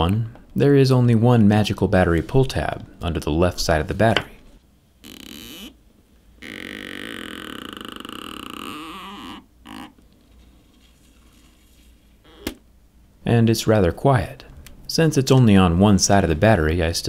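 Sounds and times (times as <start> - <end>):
adhesive tab creaking and buzzing: 5.0 - 5.8, 6.4 - 10.2, 12.3 - 12.6.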